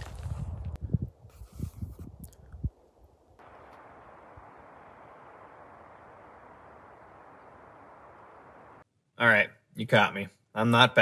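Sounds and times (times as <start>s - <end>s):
faint outdoor hiss: 2.7s - 10.2s.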